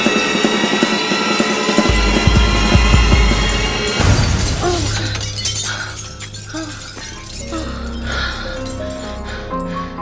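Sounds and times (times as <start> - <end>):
background music: 0.0 - 10.0
glass panel shattering: 3.9 - 7.6.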